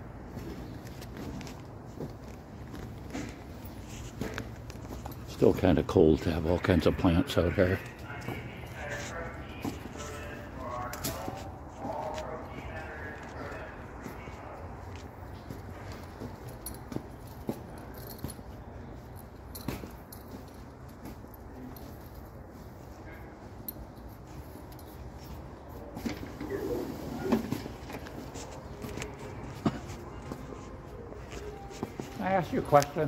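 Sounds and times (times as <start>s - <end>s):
steady ambient noise: 0.0s - 33.0s
faint background voices: 6.3s - 16.6s.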